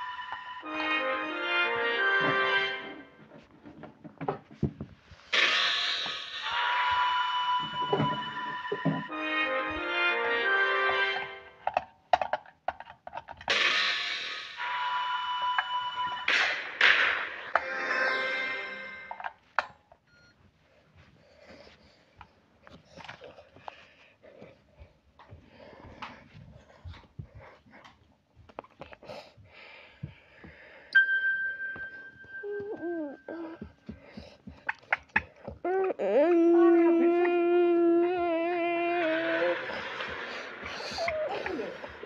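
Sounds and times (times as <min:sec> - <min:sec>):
music jingle: 0:00.0 - 0:03.2.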